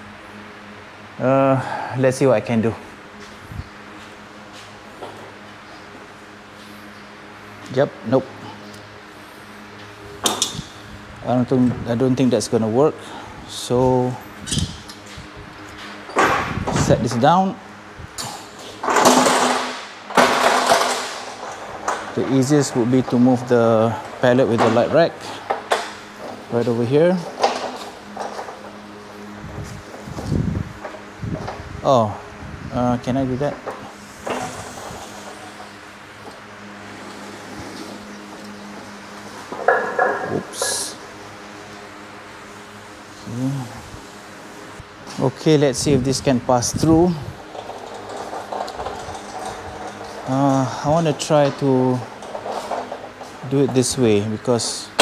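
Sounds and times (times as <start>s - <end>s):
faint steady hum: 0.0s - 55.0s
pallet jack hissing: 18.2s - 29.4s, 33.6s - 41.3s, 46.8s - 55.0s
man humming hmm: 43.2s - 43.9s.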